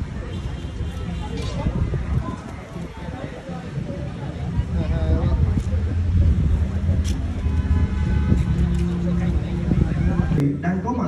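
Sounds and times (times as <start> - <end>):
wind buffeting microphone: 0.0 - 10.4
faint voices talking: 0.0 - 11.0.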